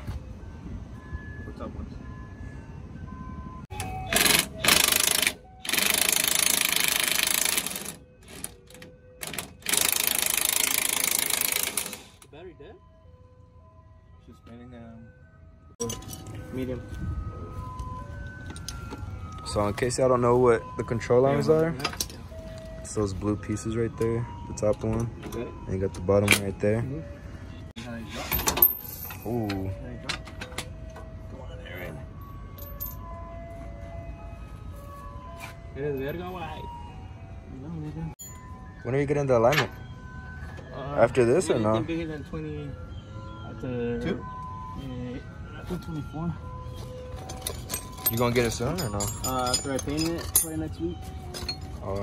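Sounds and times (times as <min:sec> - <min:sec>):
metal tools clinking and rattling: 0:15.8 - 0:16.7, 0:21.4 - 0:22.2, 0:28.2 - 0:30.9, 0:46.7 - 0:52.0.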